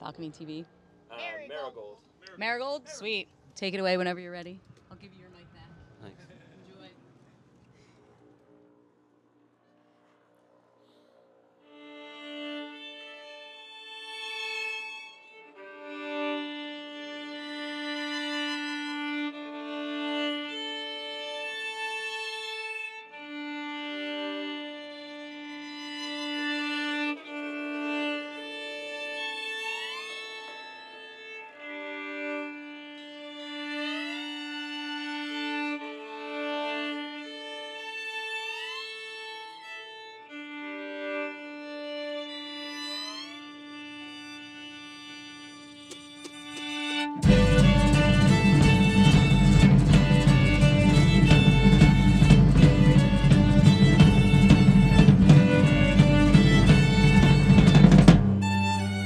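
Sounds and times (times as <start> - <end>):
bowed strings playing slowly: 11.6 - 59.0.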